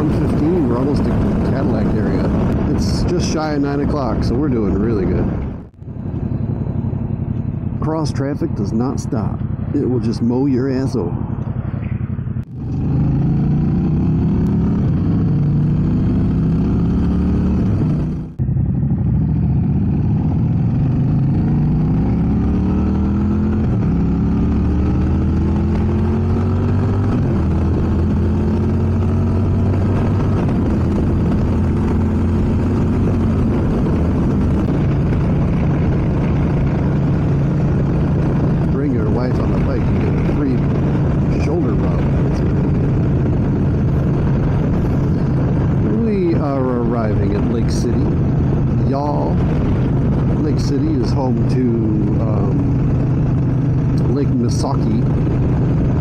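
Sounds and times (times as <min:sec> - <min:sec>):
motorcycle engine accelerating: 0:00.0 - 0:56.0.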